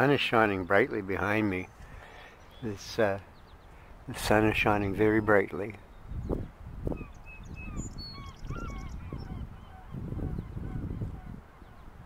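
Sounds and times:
distant flock of birds calling: 1.2s - 4.0s, 4.8s - 12.0s
wind rumbling on microphone: 3.5s - 12.0s.

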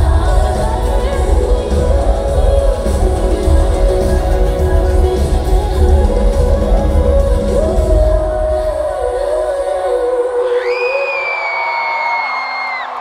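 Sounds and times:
bass-heavy pop backing: 0.0s - 9.6s
crowd screaming: 10.4s - 13.0s.

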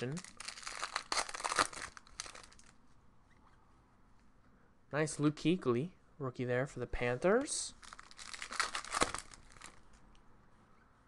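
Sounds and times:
foil pack crinkling: 0.0s - 2.7s, 7.8s - 9.8s.

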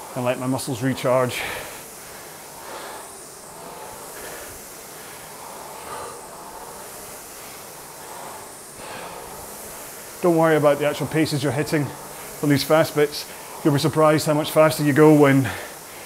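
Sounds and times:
room fan: 0.0s - 16.0s
rowing machine flywheel whoosh: 0.0s - 16.0s
person breathing hard: 1.3s - 11.0s, 11.7s - 16.0s.

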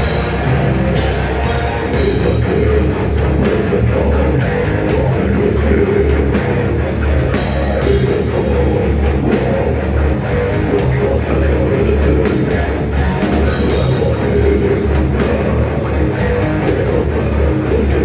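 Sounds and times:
death metal band playing live: 0.0s - 18.0s.

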